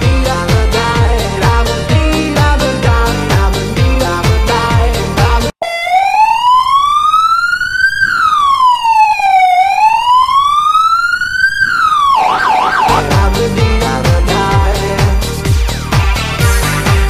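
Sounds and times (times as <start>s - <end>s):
music: 0.0s - 5.6s, 12.8s - 17.0s
police siren wailing: 5.6s - 13.5s.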